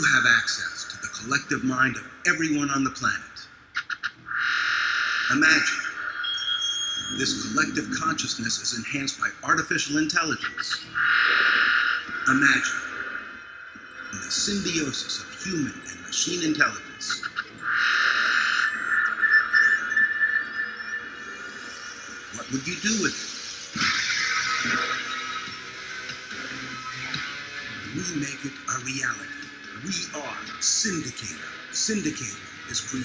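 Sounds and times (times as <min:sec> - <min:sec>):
ambient electronic music: 0:00.0 - 0:33.0
high-pitched synth tone: 0:04.3 - 0:08.6, 0:10.8 - 0:33.0
glitchy electronic stutters: 0:17.2 - 0:29.6.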